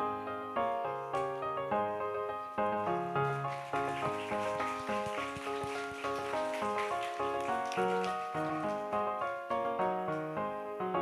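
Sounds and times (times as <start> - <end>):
electronic keyboard piano music: 0.0 - 11.0
light patter of noise: 3.2 - 9.0.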